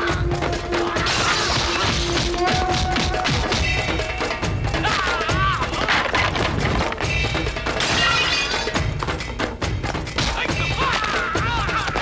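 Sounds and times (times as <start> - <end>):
action music with pounding beat: 0.0 - 12.0.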